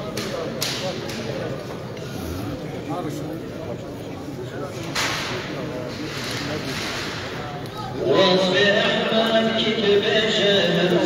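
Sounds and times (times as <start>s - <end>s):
crowd of men talking: 0.0s - 11.0s.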